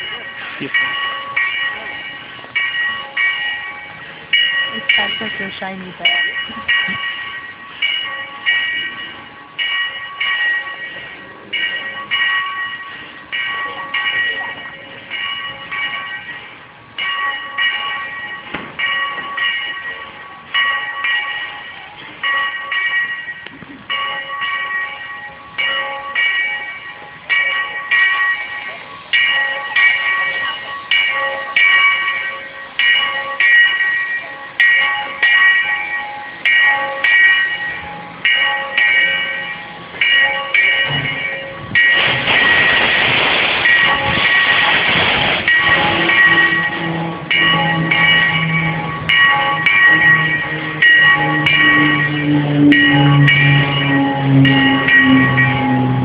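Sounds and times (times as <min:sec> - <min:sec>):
steam locomotive bell ringing: 0:00.0 - 0:56.0.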